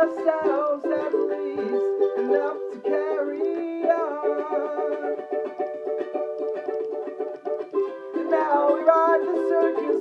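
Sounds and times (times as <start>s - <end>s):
charango strummed chords: 0.0s - 10.0s.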